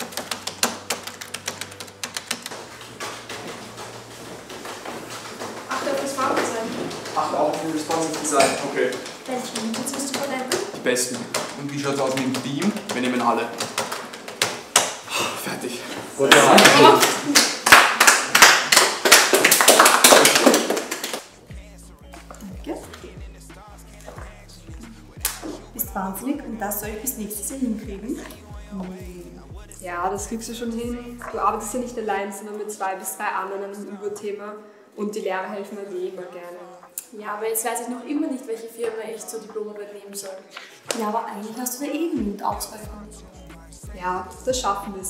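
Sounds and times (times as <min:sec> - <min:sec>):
keyboard typing clicks: 0:00.0 - 0:02.6
group clapping and cheering: 0:00.0 - 0:15.1, 0:16.2 - 0:23.4, 0:24.1 - 0:25.5
quiet background music: 0:00.0 - 0:45.0.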